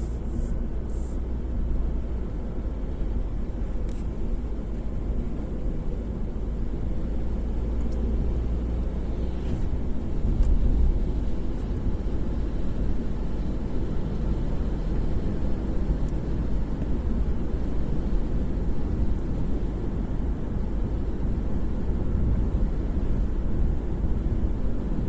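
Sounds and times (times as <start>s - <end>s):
car engine and tyres on wet road: 0.0s - 25.0s.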